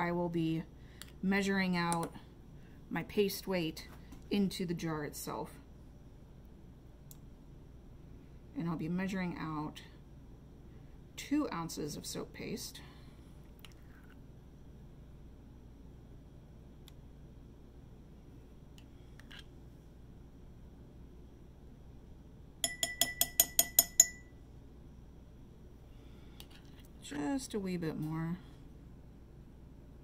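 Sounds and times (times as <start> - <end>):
spoon clinking on glass jar: 22.6 - 24.3.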